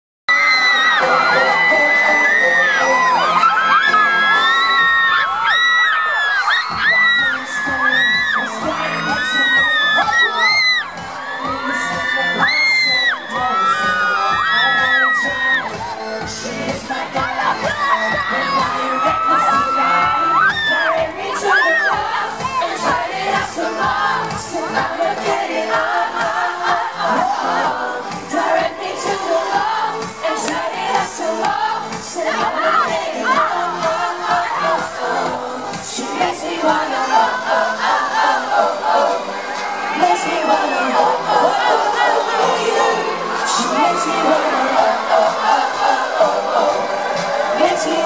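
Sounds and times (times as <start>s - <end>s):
crowd screaming and cheering: 0.3s - 48.0s
pop song through pa: 0.3s - 48.0s.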